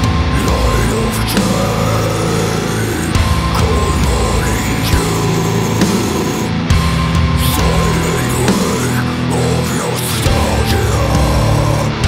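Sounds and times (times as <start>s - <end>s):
heavy distorted guitars: 0.0s - 12.0s.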